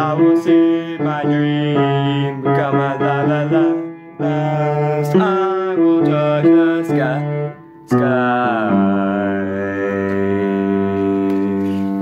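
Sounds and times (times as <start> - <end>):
held instrument chord: 0.0 - 12.0.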